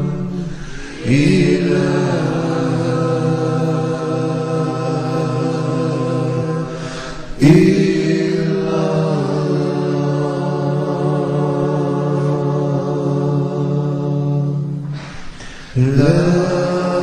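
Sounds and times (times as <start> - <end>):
devotional vocal chanting: 0.0 - 17.0.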